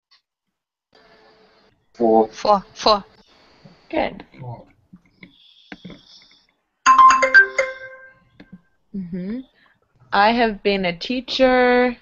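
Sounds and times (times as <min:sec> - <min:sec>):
electronic chime jingle: 0:06.9 - 0:08.2.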